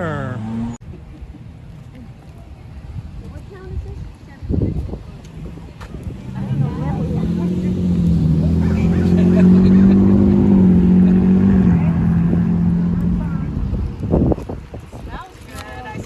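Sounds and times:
vehicle driving past: 0.0 - 0.8, 6.1 - 14.0.

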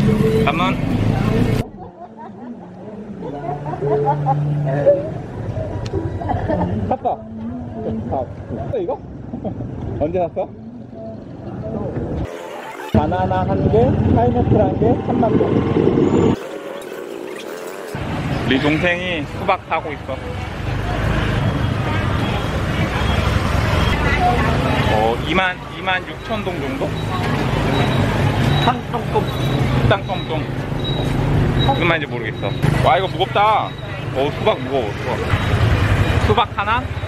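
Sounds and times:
traffic noise: 0.0 - 37.0
people talking: 12.9 - 15.6, 23.9 - 30.6, 31.6 - 35.4, 36.2 - 36.8
wind and motorbike engine rumble: 13.0 - 16.4
motorbike engines running: 13.0 - 37.0.

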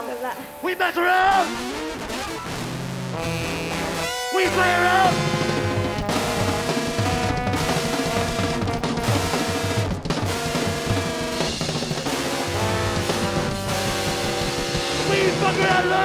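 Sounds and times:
drum kit with rolls: 1.3 - 16.0
electric bass: 1.3 - 16.0
trombone holding notes: 1.3 - 16.0.

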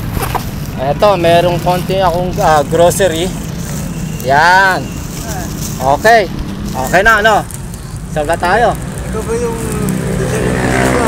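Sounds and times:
vehicle engine running: 0.0 - 11.0.

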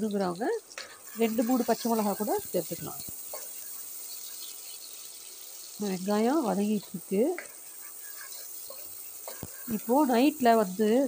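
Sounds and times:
onions sizzling in oil: 0.0 - 11.0.

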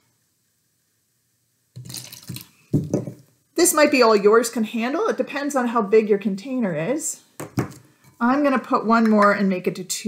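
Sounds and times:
water pouring into plastic bottle: 1.8 - 2.6.

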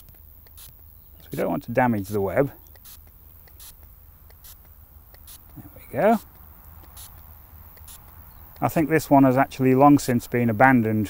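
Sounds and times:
spray bottle spritzes: 0.4 - 1.4, 2.1 - 5.6, 6.2 - 8.2.

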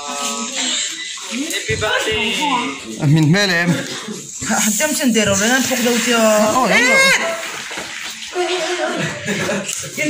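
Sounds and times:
people talking excitedly: 0.0 - 7.7.

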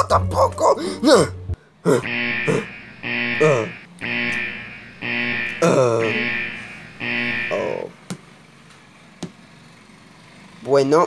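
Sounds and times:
person voicing short uh: 0.0 - 2.8, 3.4 - 3.8, 5.6 - 6.2.

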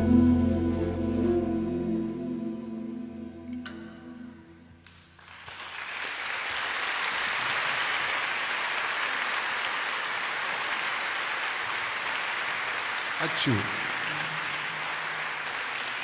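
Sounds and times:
large audience applauding: 4.8 - 16.0.

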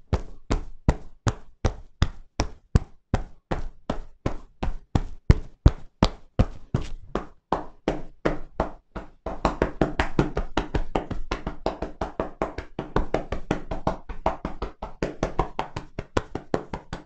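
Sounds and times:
hands tapping shoulders through towel: 0.0 - 17.0.

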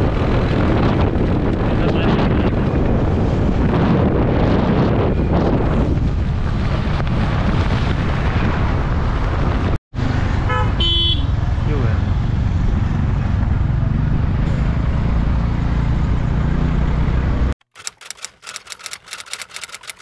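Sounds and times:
wind rumble on microphone: 0.0 - 10.4
scooter engine and road noise: 0.0 - 20.0
vehicle horn honking: 10.5 - 11.3
typewriter key clicks: 17.7 - 20.0.

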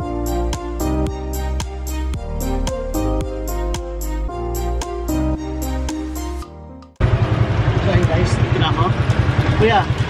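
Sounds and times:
motorcycle engine throbbing: 7.0 - 10.0.

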